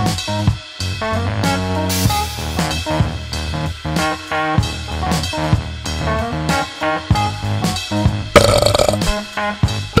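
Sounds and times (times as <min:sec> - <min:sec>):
burp sound effect: 0:08.3 - 0:09.3
music jingle with drum beat: 0:08.4 - 0:09.2.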